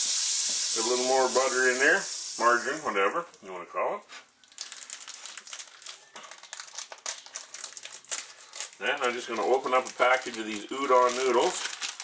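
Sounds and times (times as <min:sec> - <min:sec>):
margarine sizzling in a frying pan: 0:00.0 - 0:03.0
crackling pops: 0:04.3 - 0:12.0.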